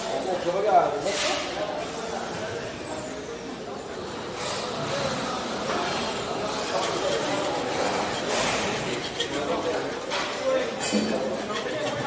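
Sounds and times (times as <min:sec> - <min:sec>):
construction machinery noise: 0:00.0 - 0:12.0.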